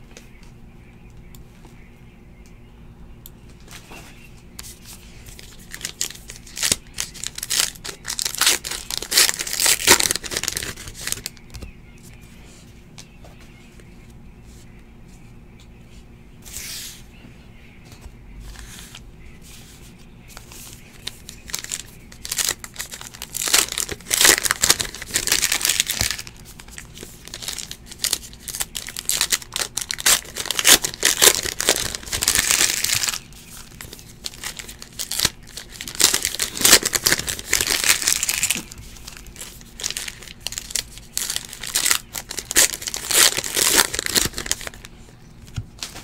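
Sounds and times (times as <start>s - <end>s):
card pack wrappers crinkling: 4.6s - 11.5s, 20.3s - 44.9s.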